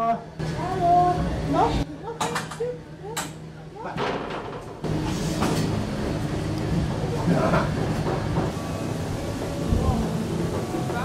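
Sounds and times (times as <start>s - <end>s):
low mechanical hum of ride: 0.0s - 11.0s.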